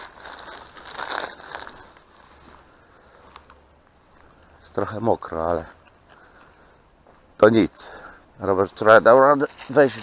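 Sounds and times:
plastic sack rustling: 0.0 - 2.6, 9.0 - 10.0.

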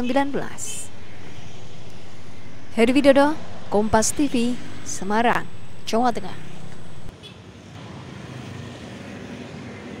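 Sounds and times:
car engines passing: 0.9 - 10.0
motorcycle engine passing: 7.7 - 10.0.

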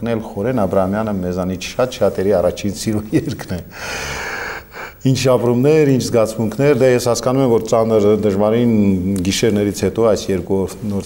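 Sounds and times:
man talking: 0.0 - 3.8, 5.0 - 11.0.

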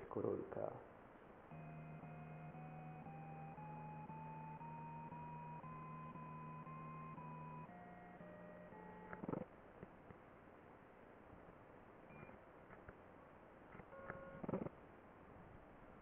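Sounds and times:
steady low tone: 1.4 - 9.4
electronic beep tones: 13.9 - 14.6.

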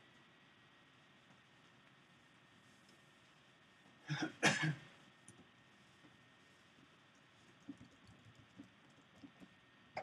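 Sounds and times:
person coughing: 4.1 - 4.9.

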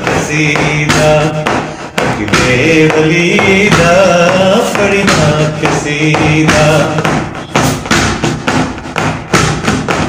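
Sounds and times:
hands thumping on desk: 0.0 - 10.0.

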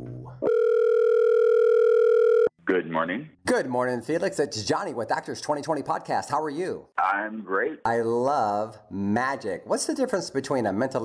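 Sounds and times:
telephone ringback tone: 0.4 - 2.5.

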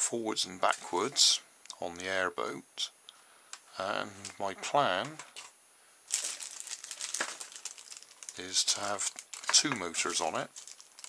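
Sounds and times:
plastic bag crinkling: 6.1 - 11.0.

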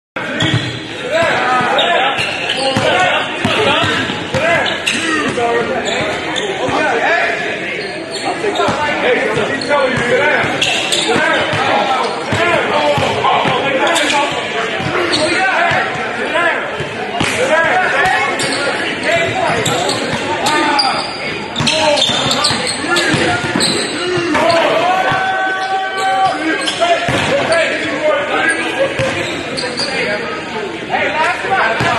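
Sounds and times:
players' voices: 0.2 - 31.9
sneakers squeaking on hardwood: 0.3 - 6.8, 7.8 - 16.0, 17.7 - 27.9, 28.5 - 30.1.

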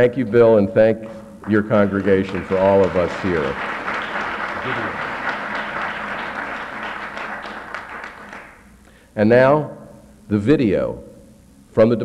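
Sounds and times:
audience applauding: 1.4 - 8.7.

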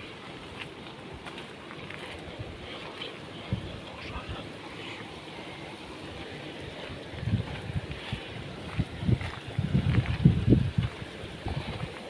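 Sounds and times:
river rushing over riffles: 0.0 - 12.0
wind buffeting microphone: 2.2 - 4.5, 5.8 - 12.0.

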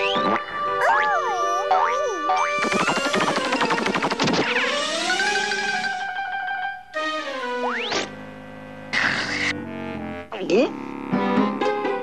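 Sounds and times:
cartoon music: 0.0 - 4.8
springy sound effects: 0.0 - 4.9.

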